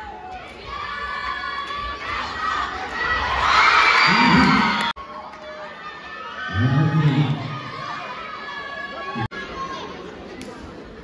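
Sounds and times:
crowd shouting and cheering: 0.0s - 10.4s
crowd murmur: 5.9s - 11.0s.

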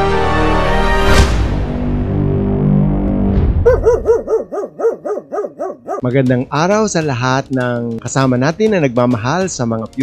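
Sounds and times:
small dog yapping: 3.7s - 6.1s.

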